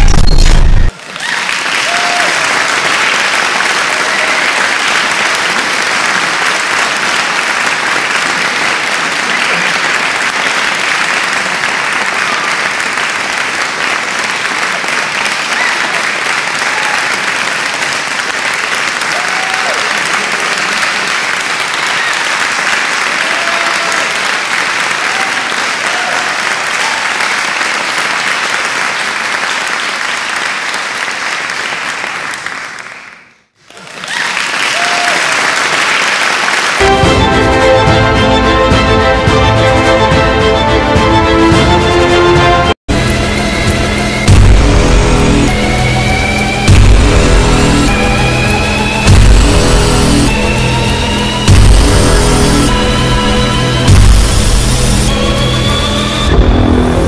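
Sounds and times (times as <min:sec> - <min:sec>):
crowd applauding: 0:00.0 - 0:57.0
voices cheering: 0:00.9 - 0:02.9, 0:03.7 - 0:05.4, 0:15.2 - 0:17.5, 0:19.0 - 0:20.9, 0:21.6 - 0:27.3, 0:33.8 - 0:35.9.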